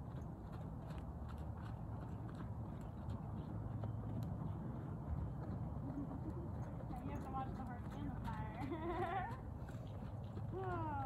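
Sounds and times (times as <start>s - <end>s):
hoofbeats on dirt: 0.0s - 11.0s.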